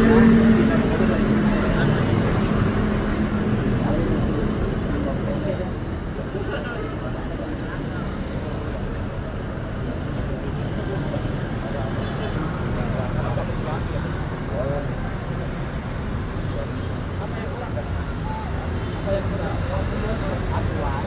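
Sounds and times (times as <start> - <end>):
indistinct crowd voices: 0.0 - 21.0
motorbikes passing: 0.0 - 21.0
street traffic passing: 0.0 - 21.0.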